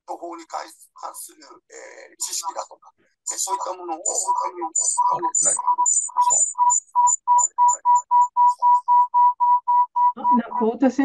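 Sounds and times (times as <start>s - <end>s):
short electronic beeps: 3.5s - 10.7s.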